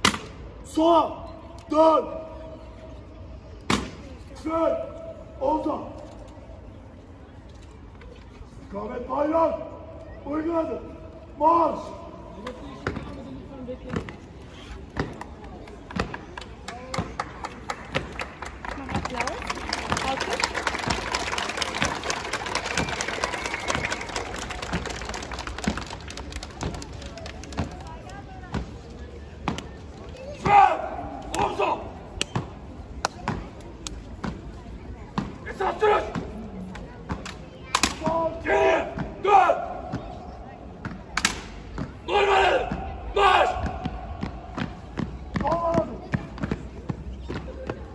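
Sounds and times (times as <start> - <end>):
crowd noise: 0.0 - 47.9
crowd voices: 0.0 - 47.9.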